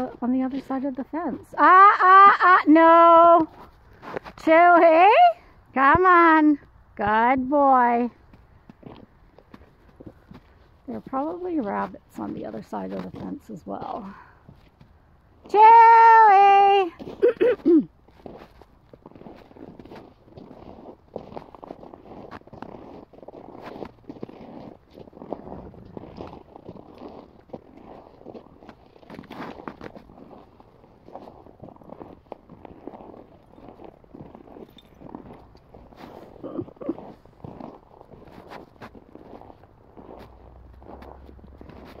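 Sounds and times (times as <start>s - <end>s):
footsteps crunching through snow: 8.2s - 15.6s, 16.8s - 42.0s.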